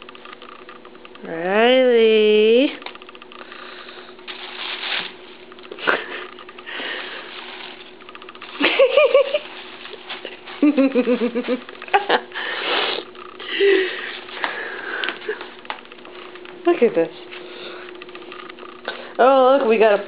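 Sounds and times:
woman laughing: 0:05.8 - 0:06.4, 0:08.6 - 0:09.6, 0:10.6 - 0:12.4, 0:13.4 - 0:14.1.

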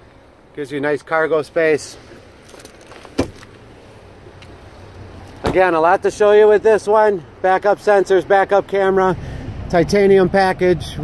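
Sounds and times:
faint background noise: 0:00.0 - 0:11.0
thump: 0:03.1 - 0:03.4.

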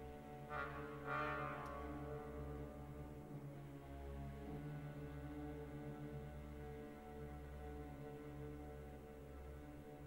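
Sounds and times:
orchestra playing low chords: 0:00.0 - 0:03.8.

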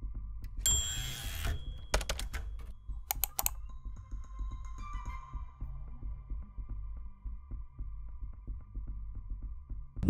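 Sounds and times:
typing-like clicks: 0:01.2 - 0:03.6.

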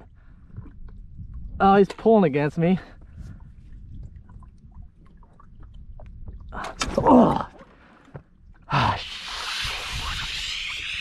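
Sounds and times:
wind rumble on microphone: 0:00.0 - 0:07.1, 0:08.4 - 0:11.0.

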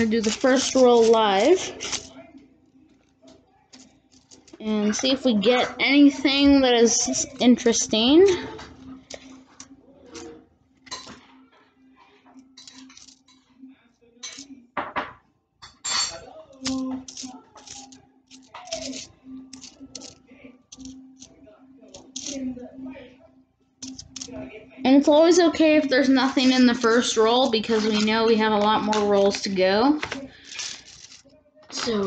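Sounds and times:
coins clinking: 0:12.6 - 0:13.4, 0:15.9 - 0:21.3, 0:23.8 - 0:24.4, 0:30.3 - 0:31.2.

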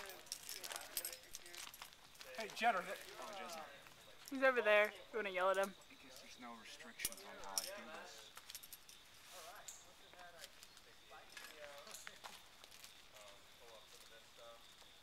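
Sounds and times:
climbing hardware clinking: 0:00.0 - 0:02.6, 0:06.9 - 0:09.0.

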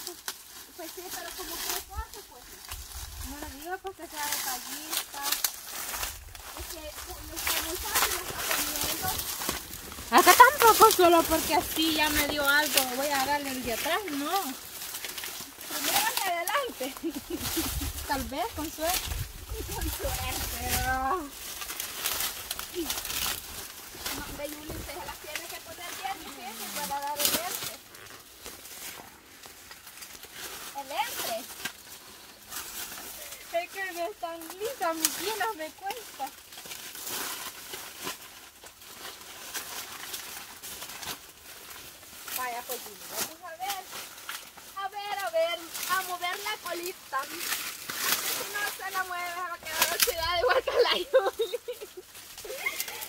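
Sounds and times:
faint rustling: 0:00.0 - 0:53.0
woman's voice: 0:00.8 - 0:02.6, 0:03.2 - 0:05.4, 0:06.6 - 0:09.2, 0:10.1 - 0:14.6, 0:15.7 - 0:21.3, 0:24.1 - 0:27.6, 0:30.8 - 0:31.5, 0:33.4 - 0:36.3, 0:42.4 - 0:43.9, 0:44.8 - 0:47.4, 0:48.4 - 0:51.9.

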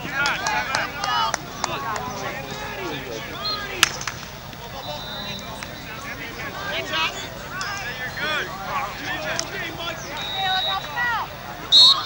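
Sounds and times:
people shouting and calling: 0:00.0 - 0:12.0
sharp crack: 0:03.8 - 0:04.4.

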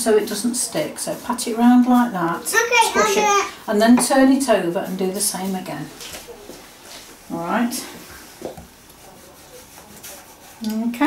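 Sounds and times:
hands rubbing icing: 0:00.1 - 0:11.0.

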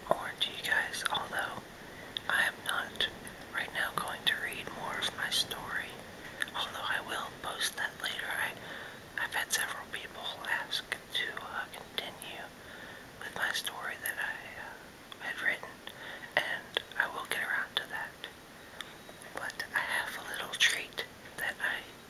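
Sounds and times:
man whispering: 0:00.0 - 0:01.6, 0:02.2 - 0:08.6, 0:09.2 - 0:12.5, 0:13.2 - 0:18.3, 0:19.3 - 0:22.0.

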